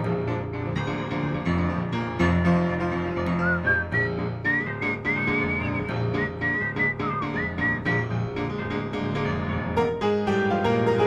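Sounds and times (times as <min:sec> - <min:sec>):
grand piano playing: 0:00.0 - 0:11.0
whistled melody: 0:01.5 - 0:09.6.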